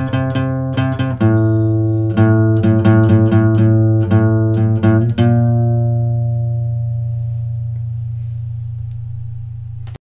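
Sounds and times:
acoustic guitar chord ringing: 0.0 - 9.9.

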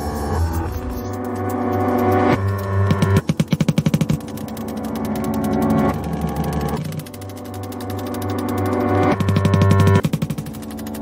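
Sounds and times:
rapid stuttering electronic hits: 2.2 - 11.0.

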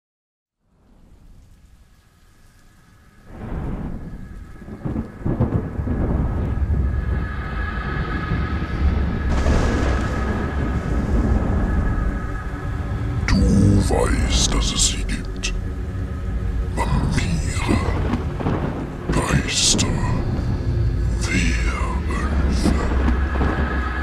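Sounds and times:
steady rain: 0.6 - 24.0
rumbling thunder: 3.3 - 24.0.

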